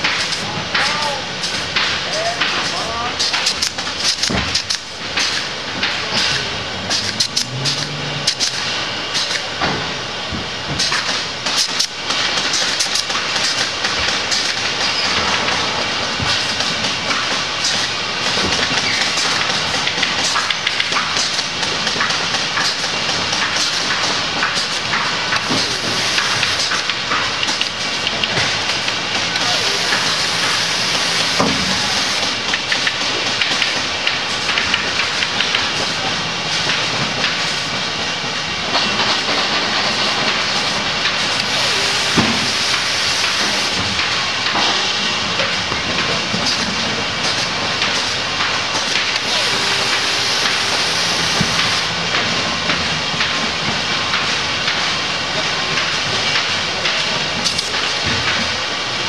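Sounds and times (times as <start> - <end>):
machinery clatter: 0.0 - 59.0
compressed air tool hissing: 25.4 - 26.6, 29.4 - 32.4, 41.4 - 43.8, 49.2 - 51.9.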